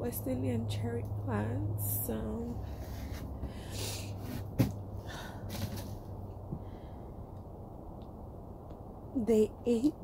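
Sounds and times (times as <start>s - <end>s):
woman breathing noisily: 2.6s - 7.3s.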